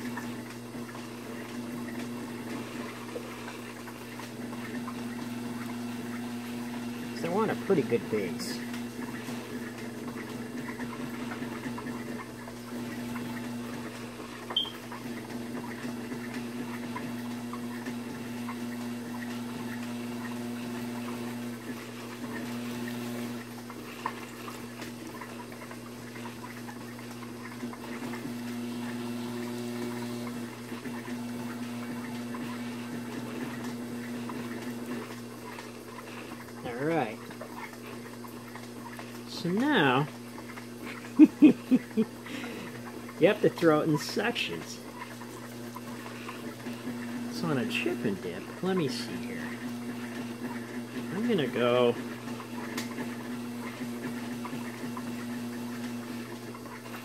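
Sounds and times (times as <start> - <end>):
pottery wheel motor hum: 0.0 - 57.0.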